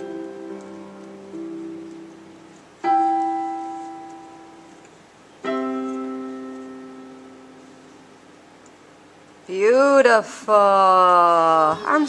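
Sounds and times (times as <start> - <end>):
piano chords: 0.0 - 9.4.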